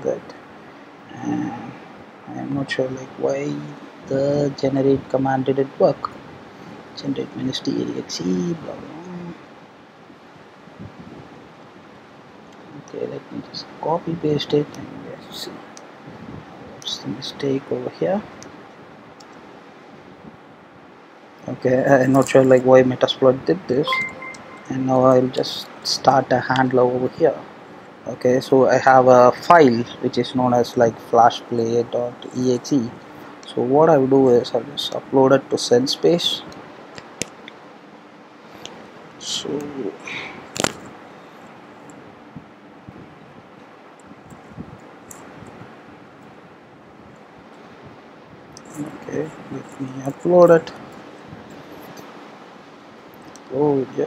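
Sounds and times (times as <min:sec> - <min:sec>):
microphone hiss: 0:00.0 - 0:54.0.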